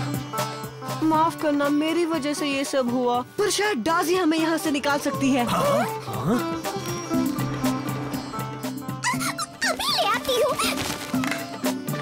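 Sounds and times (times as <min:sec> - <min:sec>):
squeaky cartoon voices chattering: 0:08.9 - 0:10.8.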